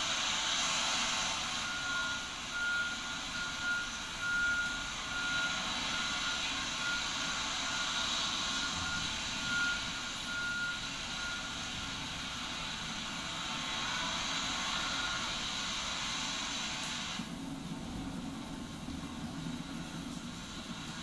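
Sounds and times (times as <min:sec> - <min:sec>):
steady hiss: 0:00.0 - 0:21.0.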